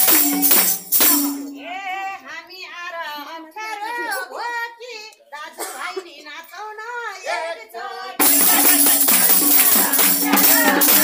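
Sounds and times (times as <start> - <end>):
woman singing unaccompanied: 1.4 - 11.0.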